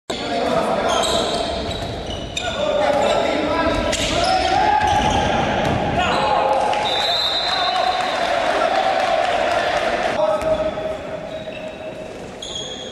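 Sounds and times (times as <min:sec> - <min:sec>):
ball bouncing on wooden court: 0:01.5 - 0:06.0
people shouting: 0:03.9 - 0:10.2.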